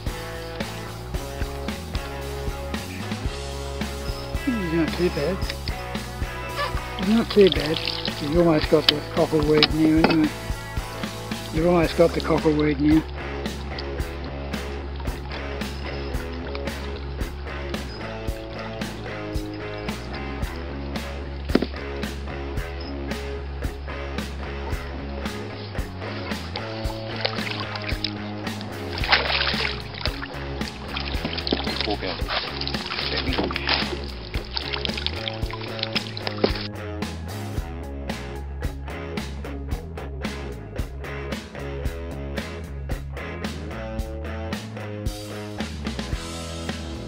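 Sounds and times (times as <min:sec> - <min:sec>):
music with drum beat and bass: 0:00.0 - 0:47.0.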